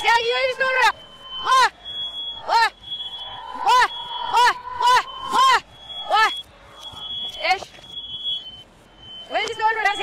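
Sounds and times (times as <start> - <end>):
smoke alarm high steady tone: 0.0 - 10.0
reversed shouts: 0.2 - 6.9.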